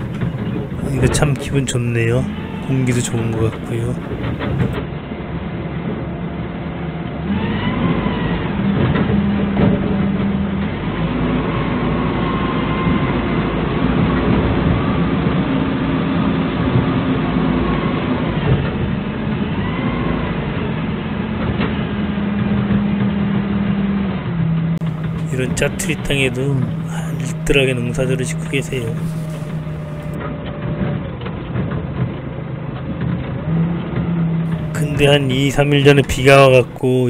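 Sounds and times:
faint whine: 0:00.0 - 0:04.8, 0:24.8 - 0:30.5, 0:34.5 - 0:37.0
forklift engine running: 0:00.0 - 0:05.1, 0:08.6 - 0:37.0.

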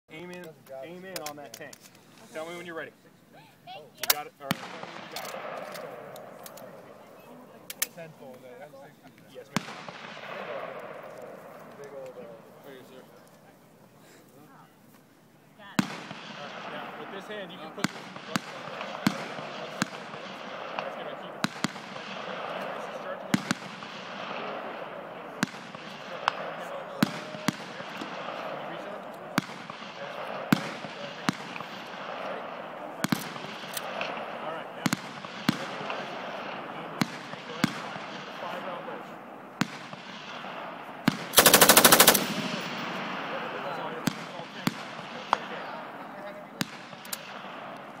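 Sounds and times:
murmur of voices: 0:00.1 - 0:48.0
single gunshots: 0:04.0 - 0:07.0, 0:09.4 - 0:12.4, 0:15.8 - 0:45.8
machine gun automatic fire: 0:41.3 - 0:42.9.

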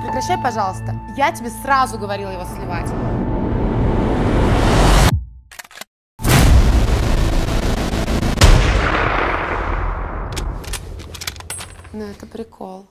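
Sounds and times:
heavy boom hits: 0:06.2 - 0:10.6.

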